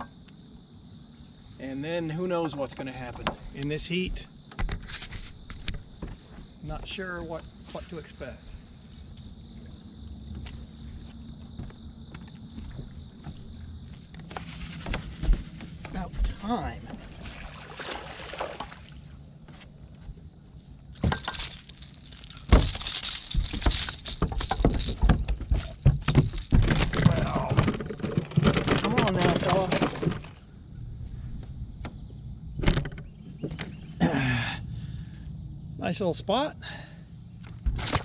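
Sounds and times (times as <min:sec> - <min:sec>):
fish splashing at water surface: 0:17.2 - 0:19.1
handling noise: 0:20.9 - 0:30.4.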